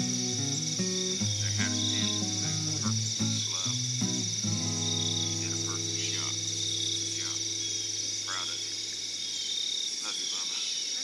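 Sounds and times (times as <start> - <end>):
crickets and insects chirping: 0.0 - 11.0
rapidly pulsed insect call: 0.0 - 11.0.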